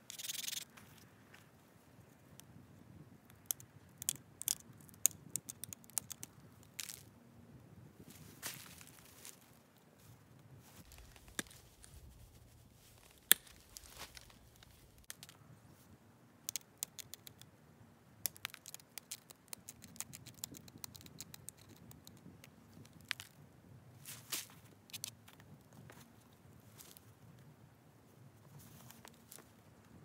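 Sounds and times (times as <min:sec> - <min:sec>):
stone flaking clicks and snaps: 0:03.2 - 0:07.1, 0:13.1 - 0:15.4, 0:16.4 - 0:17.5, 0:18.2 - 0:23.4, 0:24.9 - 0:25.4.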